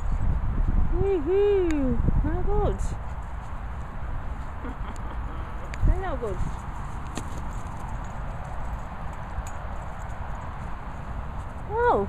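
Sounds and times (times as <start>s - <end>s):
camera handling rumble: 7.0s - 7.9s.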